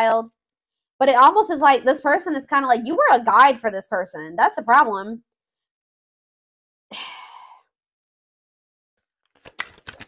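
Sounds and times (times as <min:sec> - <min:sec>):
woman sighing: 0:06.9 - 0:07.6.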